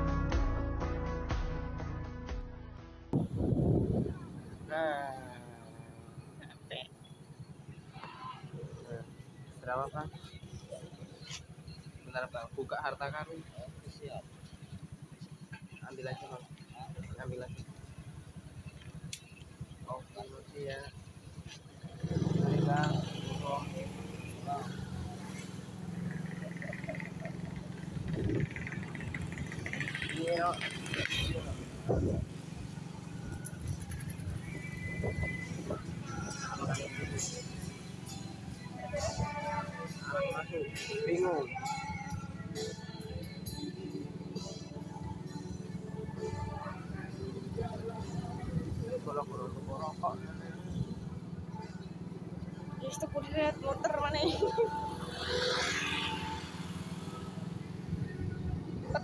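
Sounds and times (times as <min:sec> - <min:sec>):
vehicle engine hum: 0:03.1 - 0:59.0.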